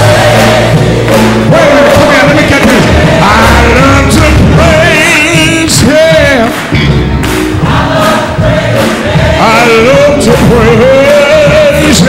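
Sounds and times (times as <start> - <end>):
church band playing: 0.0 - 12.0
gospel choir singing: 0.0 - 12.0.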